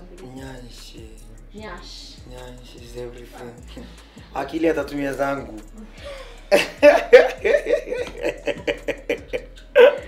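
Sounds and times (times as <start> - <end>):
hearty laughter: 6.0 - 10.0.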